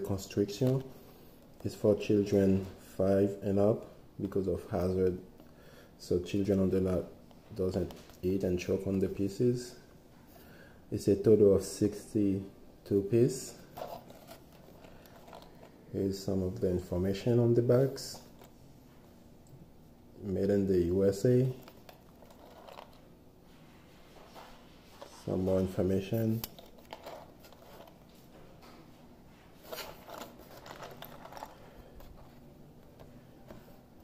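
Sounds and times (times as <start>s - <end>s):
toy box clicks and rustles: 21.6s - 23.0s, 26.4s - 28.0s, 29.6s - 32.4s.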